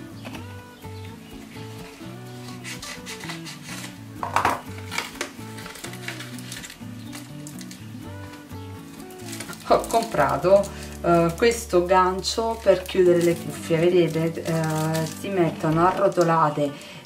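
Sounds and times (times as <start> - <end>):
background music: 0.0 - 17.0
paper mailer crinkling: 1.4 - 17.0
scissors cutting paper: 1.8 - 4.0, 4.8 - 8.4, 9.0 - 10.8, 12.3 - 16.4.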